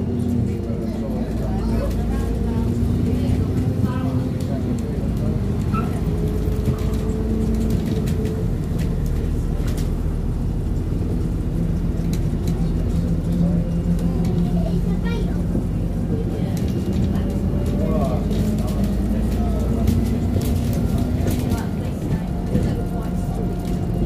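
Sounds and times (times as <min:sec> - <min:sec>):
bus engine drone: 0:00.0 - 0:24.0.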